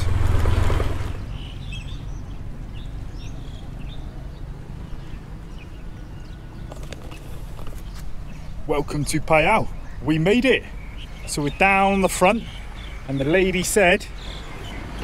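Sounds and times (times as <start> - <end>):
motorbike wind and road noise: 0.0 - 15.0.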